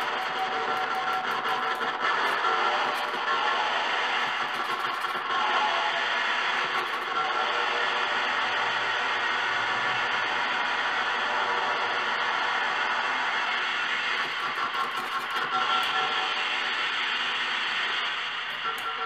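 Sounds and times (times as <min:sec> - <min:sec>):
dense noise music: 0:00.0 - 0:19.0.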